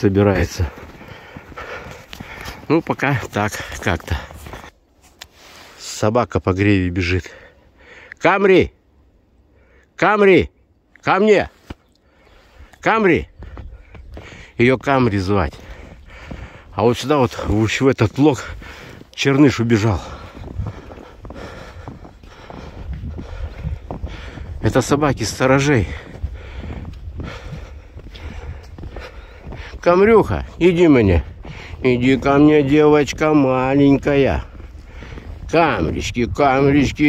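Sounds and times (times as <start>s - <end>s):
footsteps crunching in snow: 0.0s - 6.0s, 13.3s - 37.0s
wind rumble on microphone: 20.1s - 29.7s, 31.1s - 37.0s.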